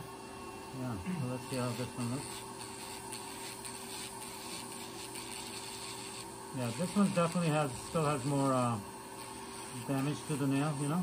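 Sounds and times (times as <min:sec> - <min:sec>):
nail drill motor hum: 0:00.0 - 0:11.0
burr scraping toenail: 0:01.4 - 0:11.0.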